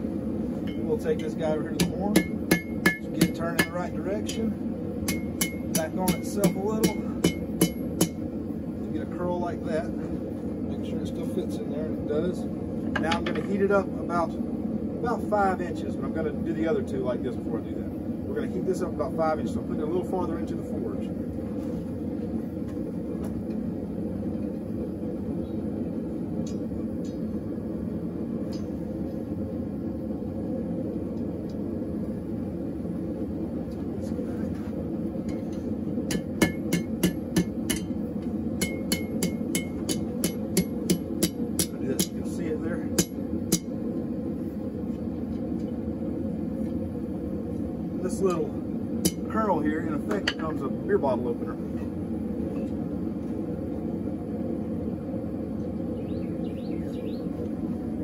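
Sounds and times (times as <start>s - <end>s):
hammer ringing on anvil: 1.8s - 3.8s, 5.1s - 8.2s, 38.6s - 42.2s.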